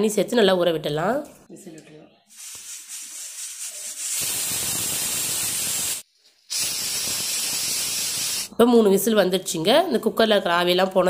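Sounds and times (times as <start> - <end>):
pressure cooker hissing steam: 2.4 - 8.5.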